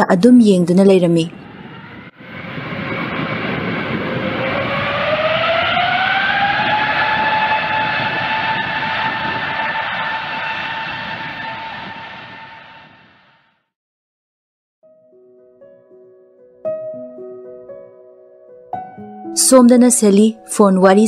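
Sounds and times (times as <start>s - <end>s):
jet engines spooling up: 1.0s - 13.5s.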